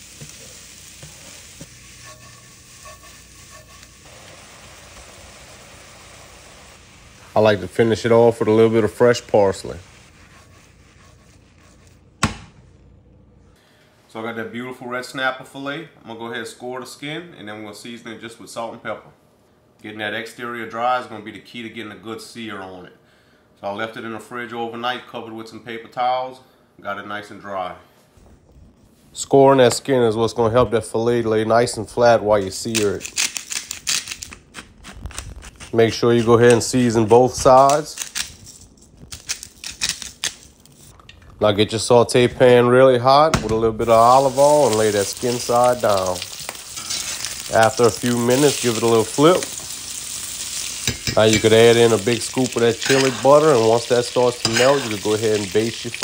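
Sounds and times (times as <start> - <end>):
food sizzling in a pan: 0.0 - 7.6, 43.8 - 56.0
pepper mill grinding: 44.0 - 56.0.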